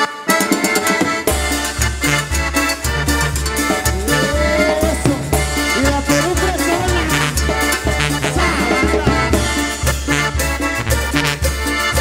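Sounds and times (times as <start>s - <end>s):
accordion clipped notes: 0.0s - 12.0s
bass and drums dance beat: 1.3s - 11.4s.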